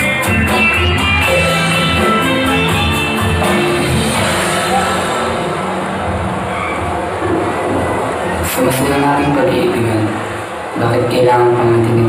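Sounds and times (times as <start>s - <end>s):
loud rumbling sound effect: 3.7s - 9.0s.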